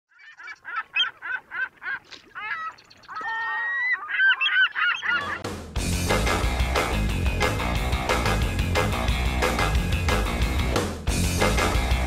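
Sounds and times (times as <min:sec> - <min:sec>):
honking bird calls: 0:00.1 - 0:05.5
loud music: 0:05.3 - 0:12.0.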